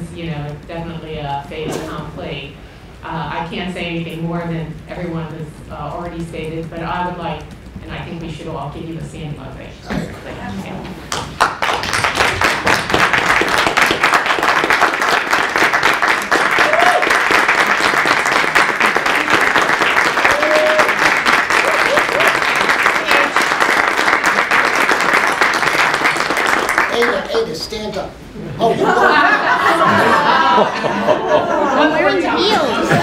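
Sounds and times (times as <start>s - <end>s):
crowd applauding: 11.1s - 27.6s.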